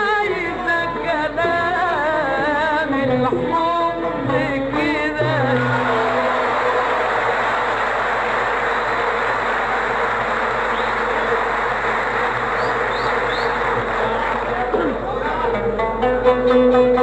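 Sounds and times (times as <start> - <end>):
person singing: 0.0 - 7.0
audience applauding: 5.7 - 15.1.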